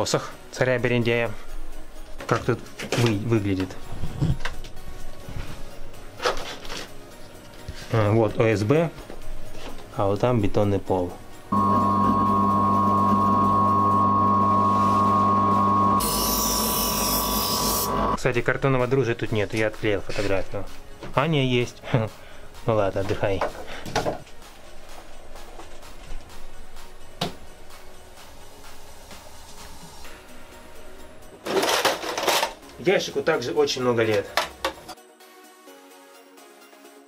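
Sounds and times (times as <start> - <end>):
faint background music: 0.0 - 12.0, 17.4 - 37.0
bench grinder humming and whining: 11.6 - 18.2
steel blade grinding on wheel: 16.0 - 18.2
metal toolbox rattling open: 31.4 - 32.6.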